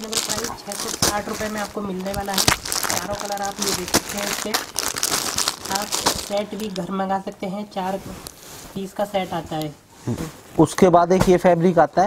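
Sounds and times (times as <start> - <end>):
plastic packaging crinkling: 0.0 - 7.2
man talking: 10.1 - 12.0.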